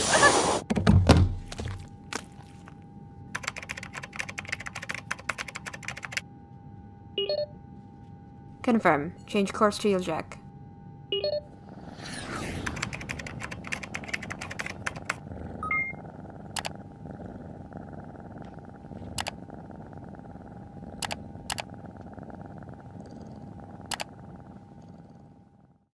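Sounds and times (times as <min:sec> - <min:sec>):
thin electronic hum: 0:01.4 - 0:25.6
computer keys clicking: 0:03.4 - 0:06.2, 0:12.7 - 0:15.2, 0:16.5 - 0:16.8, 0:21.0 - 0:21.7
cat purring: 0:11.4 - 0:25.9.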